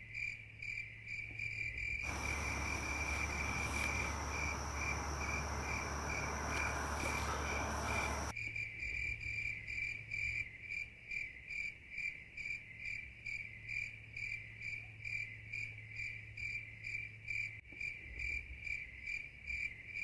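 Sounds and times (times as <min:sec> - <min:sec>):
crickets chirping: 0:02.0 - 0:08.3
low steady hum: 0:02.1 - 0:08.3.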